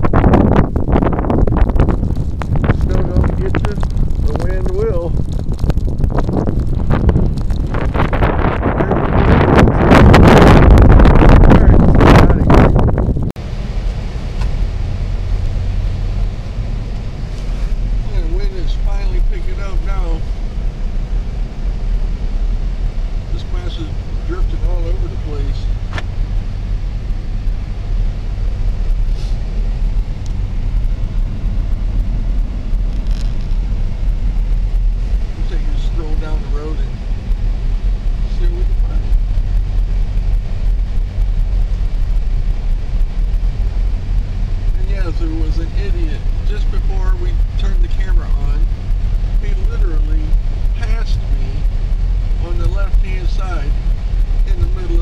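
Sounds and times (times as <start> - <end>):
car engine and tyres humming: 0.0 - 55.0
strong wind buffeting microphone: 0.0 - 55.0.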